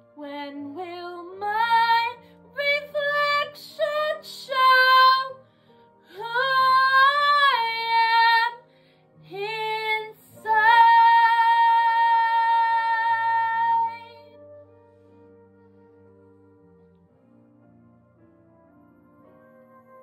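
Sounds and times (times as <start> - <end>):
woman singing: 0.0 - 5.4, 6.1 - 8.7, 9.3 - 14.3
quiet backing track: 0.0 - 20.0.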